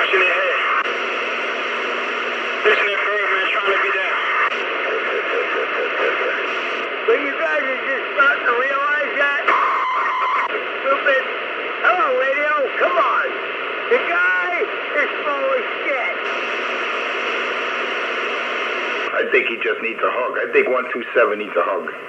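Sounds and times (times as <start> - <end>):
distorted radio voices: 0.0 - 22.0
radio static hiss: 0.0 - 22.0
steady buzzing tone: 0.7 - 2.7, 16.2 - 19.1.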